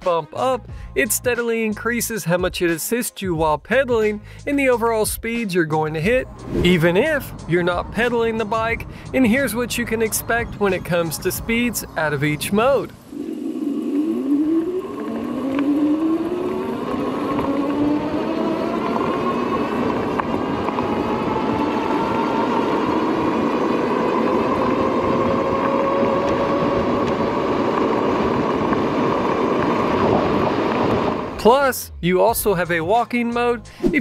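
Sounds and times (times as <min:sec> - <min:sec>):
wind rushing: 0:06.2 - 0:09.7, 0:11.8 - 0:31.7
electric bike motor whining: 0:11.5 - 0:31.4.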